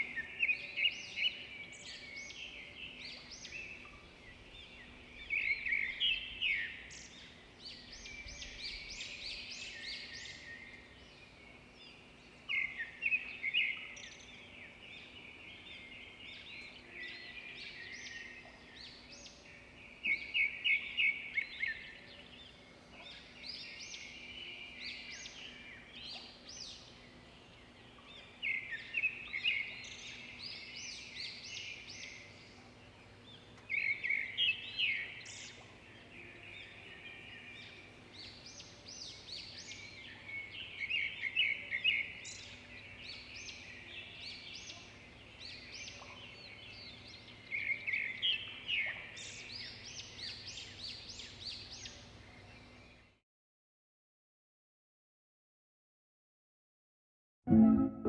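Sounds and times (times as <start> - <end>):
bird singing: 0.0 - 53.2.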